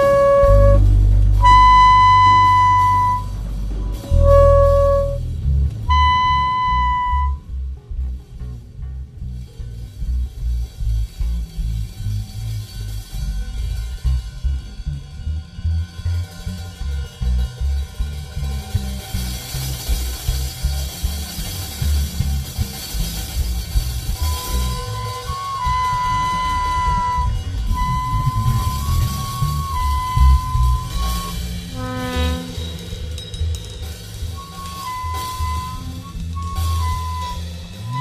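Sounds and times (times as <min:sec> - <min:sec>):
saxophone high note: 0:00.0 - 0:05.2, 0:05.9 - 0:07.5, 0:24.2 - 0:33.0, 0:34.4 - 0:38.0
rattling percussion: 0:00.0 - 0:08.8, 0:16.0 - 0:38.0
low bass drone: 0:00.0 - 0:38.0.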